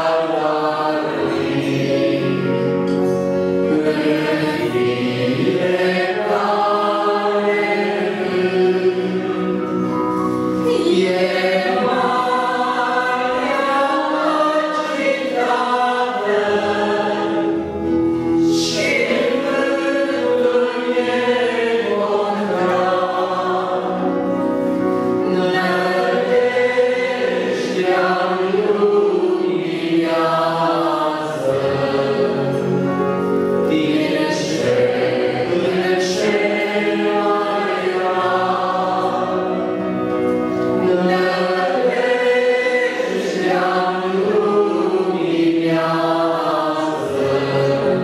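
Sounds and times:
accordion: 0.0 - 48.0
congregation singing a hymn: 0.0 - 48.0.

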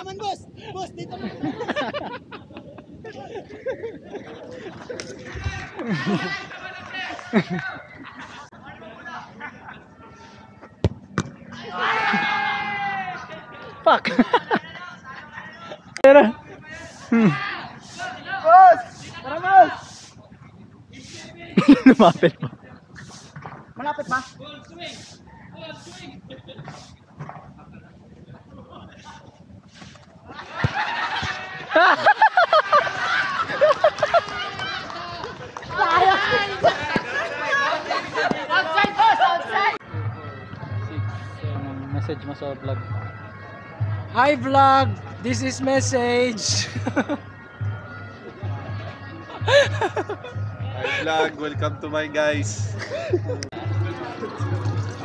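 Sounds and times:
football kicked hard: 10.8 - 11.4.

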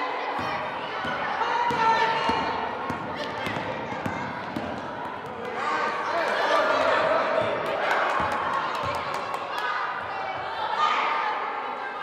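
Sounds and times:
children's voices echoing: 0.0 - 12.0
basketball bouncing on hardwood: 1.0 - 5.4.

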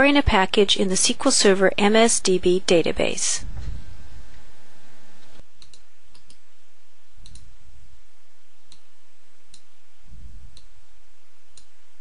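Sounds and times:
steady background hiss: 0.1 - 12.0
soft low thumps: 3.4 - 4.3
computer mouse clicks: 5.6 - 6.4, 7.2 - 7.5, 8.6 - 8.9.

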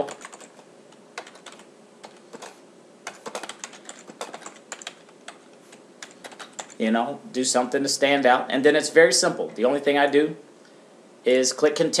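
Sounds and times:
computer keyboard typing: 0.0 - 0.6, 1.2 - 6.8.

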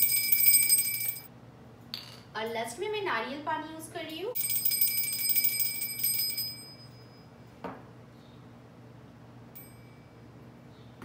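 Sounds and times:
small hand bell rung rapidly: 0.0 - 1.3, 4.4 - 7.2.

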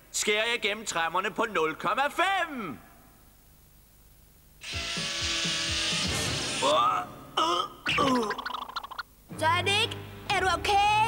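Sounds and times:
saw-like buzzing whir: 4.6 - 6.7.

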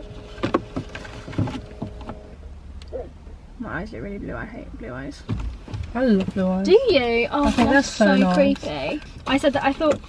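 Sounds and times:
faint steady hum: 0.0 - 5.1
low steady rumble: 0.0 - 10.0.

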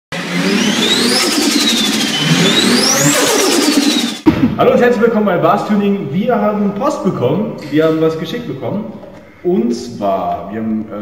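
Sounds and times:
car engine revving: 0.1 - 4.2.

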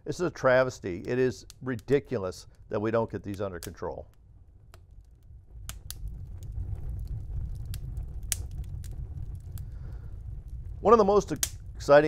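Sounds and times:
fire flames rumbling: 0.0 - 12.0
fire popping: 0.0 - 12.0.

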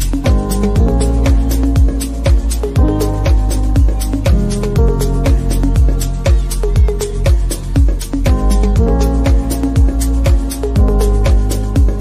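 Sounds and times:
electronic dance music: 0.0 - 12.0.

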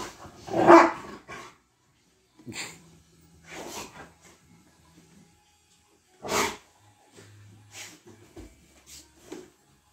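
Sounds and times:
dog barking: 0.5 - 1.2.

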